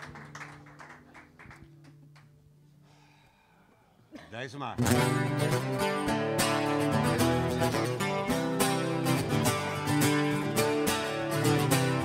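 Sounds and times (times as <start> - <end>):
small audience applauding: 0.0 - 2.4.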